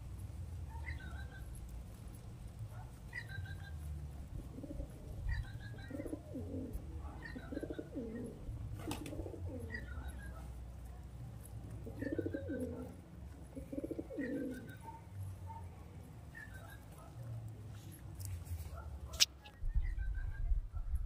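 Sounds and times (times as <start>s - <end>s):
pigeons cooing: 0.8s - 1.7s, 2.3s - 10.6s, 11.7s - 15.0s.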